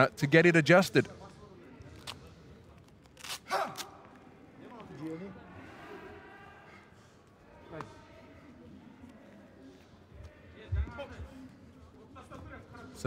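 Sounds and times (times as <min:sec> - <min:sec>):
faint voices in a hall: 0:00.0 - 0:13.0.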